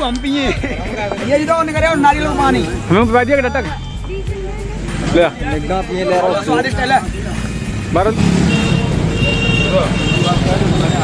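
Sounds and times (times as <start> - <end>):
street traffic: 0.0 - 11.0
vehicle engine running close by: 7.3 - 11.0.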